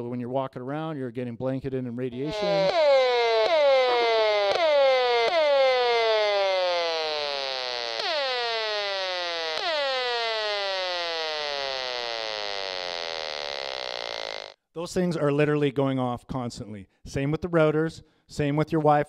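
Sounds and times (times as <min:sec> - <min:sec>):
tones sliding down in pitch: 0:02.1 - 0:14.6.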